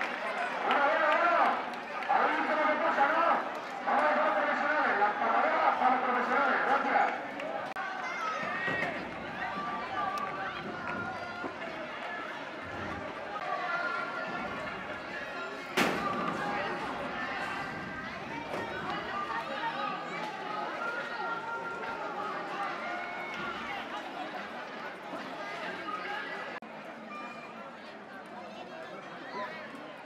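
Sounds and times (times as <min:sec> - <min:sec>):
crowd calling out and chattering: 0:00.0 - 0:30.0.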